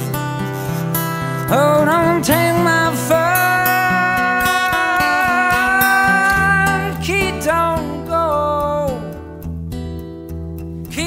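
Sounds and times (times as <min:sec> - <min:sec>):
acoustic guitar playing: 0:00.0 - 0:11.0
bass line: 0:00.0 - 0:11.0.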